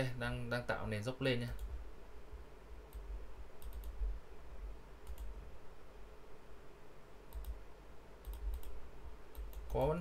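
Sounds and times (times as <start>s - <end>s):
computer mouse clicking: 1.5s - 1.8s, 2.9s - 4.1s, 5.0s - 5.4s, 7.3s - 7.6s, 8.2s - 10.0s.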